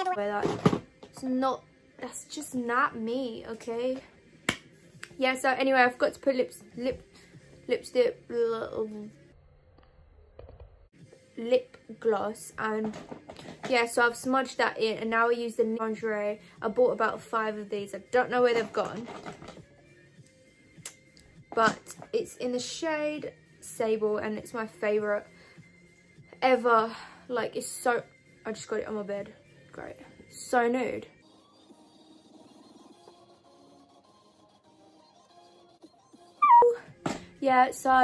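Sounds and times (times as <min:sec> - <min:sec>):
faint background music: 0:00.0 - 0:09.4, 0:10.8 - 0:38.0
high-pitched cry: 0:36.4 - 0:36.8.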